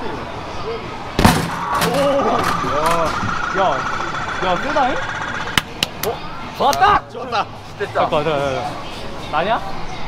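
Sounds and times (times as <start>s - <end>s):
arcade machine electronic tones: 1.4s - 5.8s.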